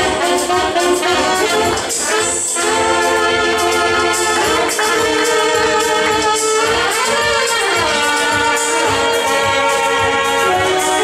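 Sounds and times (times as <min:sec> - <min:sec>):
backing track with singing: 0:00.0 - 0:11.0
saxophone long held notes: 0:00.0 - 0:11.0.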